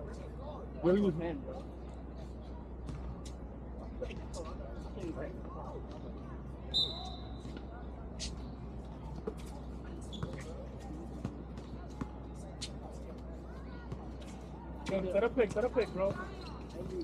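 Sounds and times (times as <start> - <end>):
distant players' voices: 0.0 - 17.0
basketball bouncing on hard court: 10.2 - 10.4.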